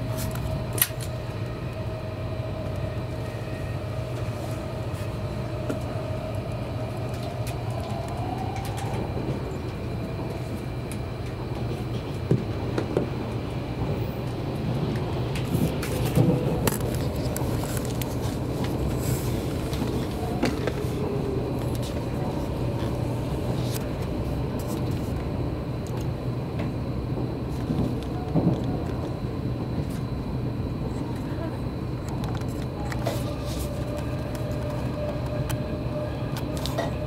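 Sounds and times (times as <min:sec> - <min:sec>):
train wheels rumbling on rail: 0:00.0 - 0:37.0.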